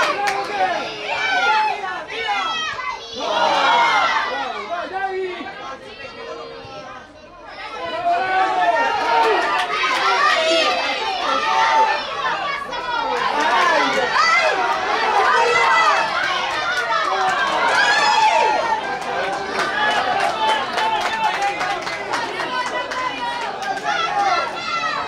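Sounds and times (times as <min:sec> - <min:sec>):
many voices shouting: 0:00.0 - 0:25.0.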